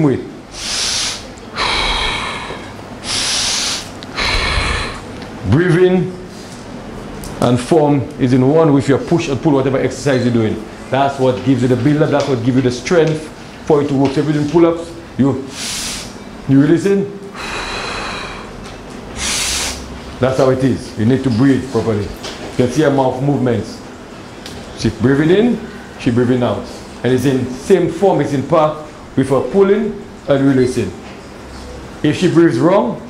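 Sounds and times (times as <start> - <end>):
person breathing forcefully: 0.5 - 5.2, 15.5 - 16.2, 17.3 - 20.0.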